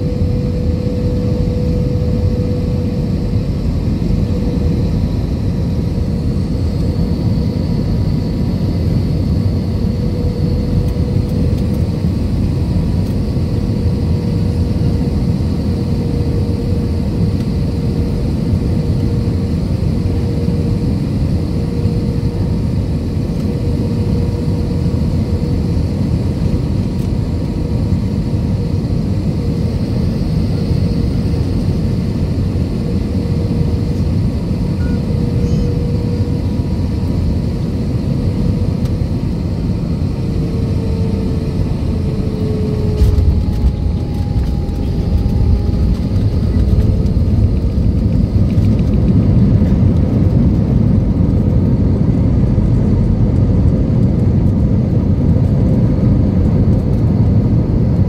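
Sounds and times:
jet engine drone and whine: 0.0s - 58.0s
plane rumbling on runway: 0.0s - 58.0s.

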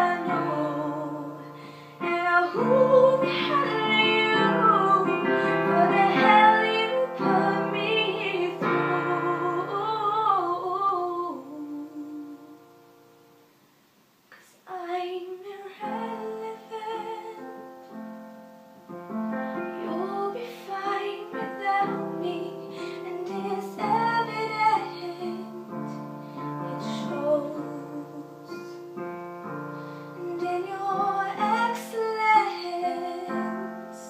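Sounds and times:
woman singing a pop song: 0.0s - 12.7s, 14.4s - 17.6s, 19.6s - 28.9s, 30.2s - 34.0s
digital piano chords: 0.0s - 13.5s, 15.8s - 34.0s.

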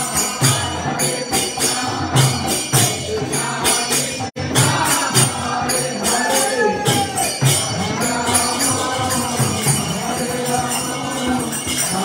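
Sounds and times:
drum beating: 0.0s - 12.0s
hand cymbals struck: 0.0s - 12.0s
person singing: 4.2s - 12.0s.

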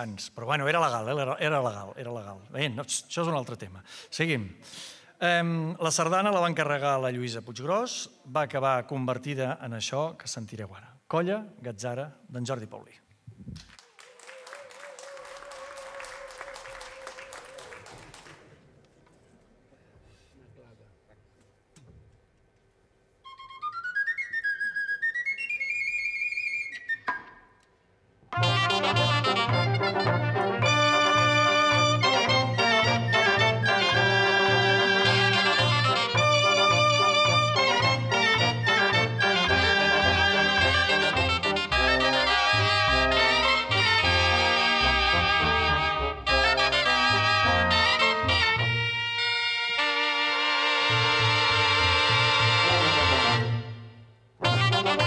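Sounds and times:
wind band playing: 28.4s - 55.0s.

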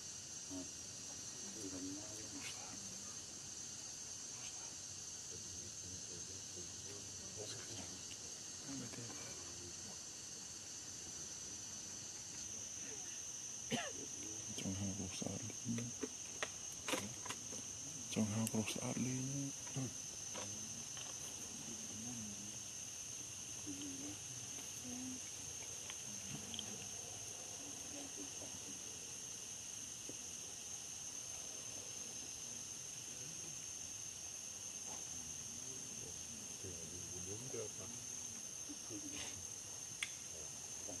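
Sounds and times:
insects buzzing: 0.0s - 41.0s.

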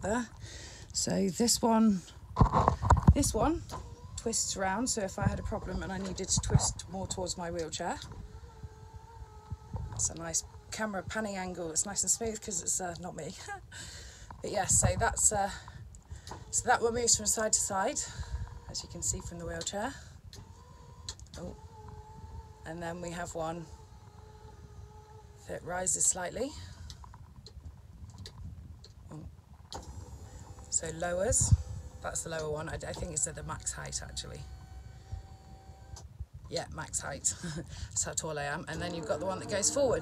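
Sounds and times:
low steady rumble: 0.0s - 40.0s
electric seat motor whining: 0.1s - 28.2s, 29.1s - 40.0s.

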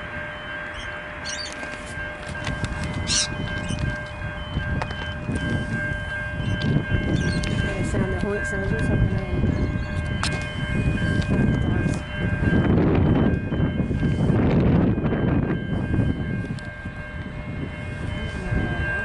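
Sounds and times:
distant diesel locomotive rumble: 0.0s - 19.0s.

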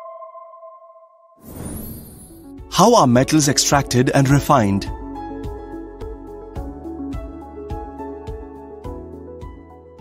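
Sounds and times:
swoosh sound effect: 1.4s - 2.4s.

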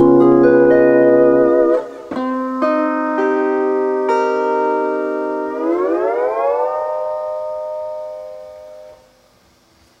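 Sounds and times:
lap steel guitar chord sliding: 0.0s - 9.2s.

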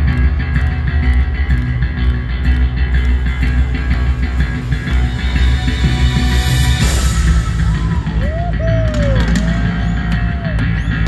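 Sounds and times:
electric guitar: 0.0s - 11.0s
heavy bass: 0.0s - 11.0s
live rock band playing: 0.0s - 11.0s.

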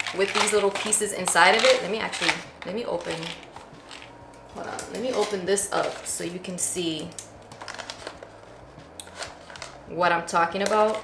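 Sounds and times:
packaging being opened by hand: 0.0s - 2.4s, 7.0s - 9.8s.

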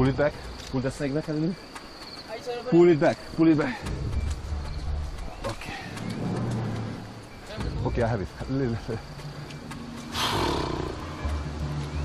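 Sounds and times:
snake hissing: 10.1s - 11.0s.

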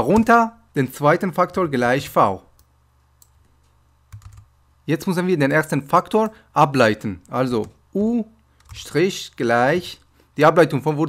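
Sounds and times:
computer keyboard clicks: 4.1s - 4.5s.

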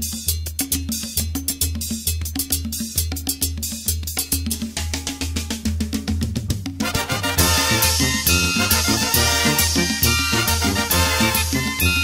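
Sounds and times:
rapid drum and cymbal hits: 0.0s - 12.0s
sustained horn notes: 6.8s - 12.0s.

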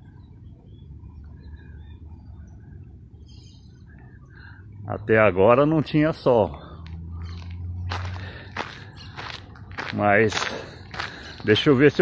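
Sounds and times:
footsteps on dirt path: 6.7s - 12.0s.

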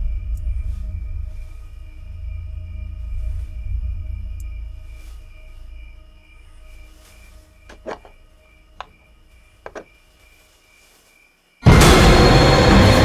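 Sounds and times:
low rumble: 0.0s - 7.7s.

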